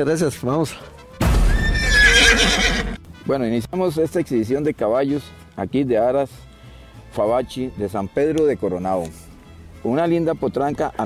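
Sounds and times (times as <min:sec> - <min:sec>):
horse whinnying: 0:01.3 - 0:03.0.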